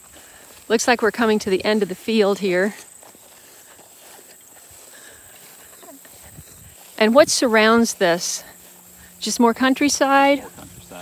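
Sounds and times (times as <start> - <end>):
footsteps in grass: 0.0 - 11.0
high-pitched insect drone: 0.0 - 11.0.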